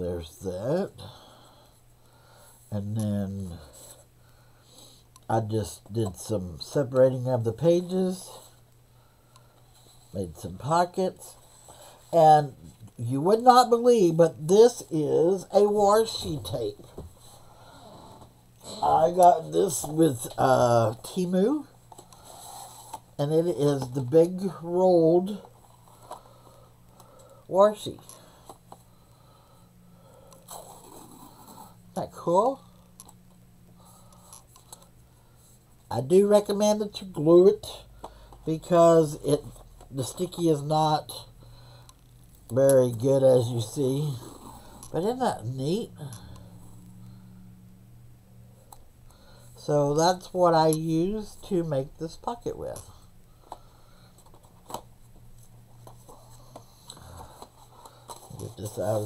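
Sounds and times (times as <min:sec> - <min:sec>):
steady low hum: 0:00.0 - 0:59.0.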